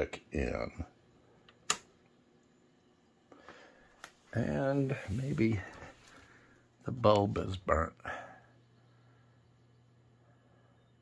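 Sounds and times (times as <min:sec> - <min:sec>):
amplifier toggle switch click: 0:01.6 - 0:01.9.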